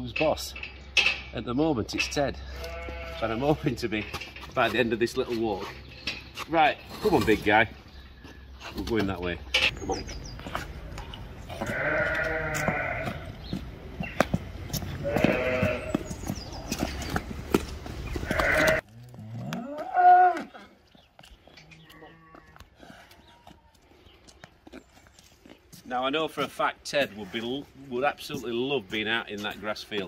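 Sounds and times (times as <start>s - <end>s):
sheep bleating: 2.5s - 3.5s, 11.6s - 13.3s, 15.0s - 16.0s, 18.2s - 18.8s.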